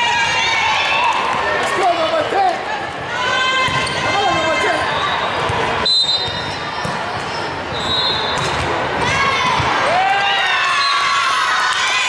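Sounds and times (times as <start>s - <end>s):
players shouting: 0.0s - 5.9s
sneaker squeaks on court: 5.2s - 8.7s.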